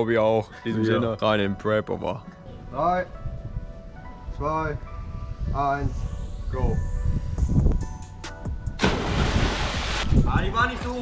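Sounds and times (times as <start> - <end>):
faint background music: 0.0 - 11.0
loud splash of water: 8.8 - 10.2.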